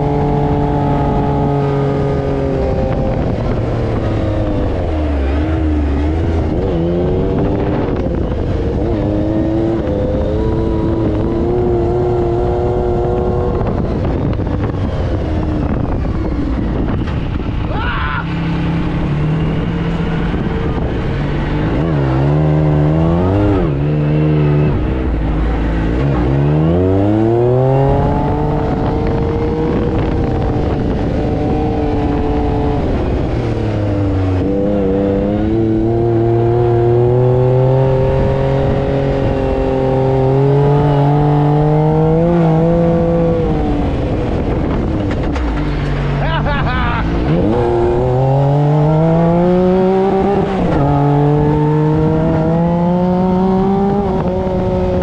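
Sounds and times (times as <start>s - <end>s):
off-road vehicle engine revving: 0.0s - 55.0s.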